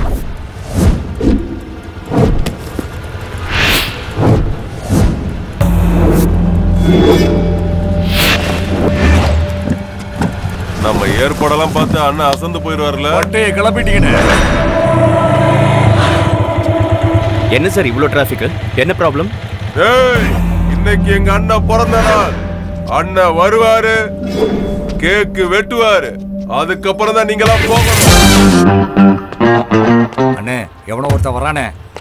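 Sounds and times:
traffic engines rumbling: 0:00.0 - 0:24.2.

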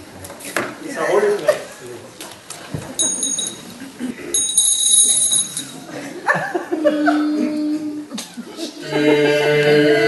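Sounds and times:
high-pitched bell ringing: 0:03.0 - 0:05.9.

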